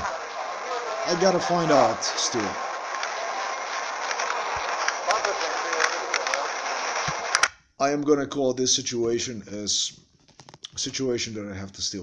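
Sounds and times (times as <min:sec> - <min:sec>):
man speaking: 0:00.9 - 0:02.7, 0:05.0 - 0:06.7, 0:07.8 - 0:09.9, 0:10.7 - 0:12.0
faint voice: 0:01.0 - 0:02.7, 0:05.0 - 0:06.7.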